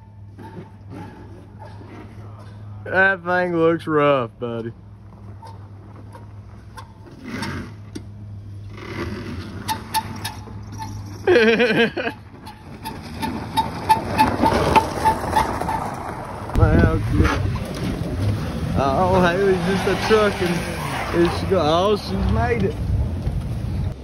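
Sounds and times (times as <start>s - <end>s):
car engine humming: 0.0s - 24.0s
tyres on gravel: 0.0s - 24.0s.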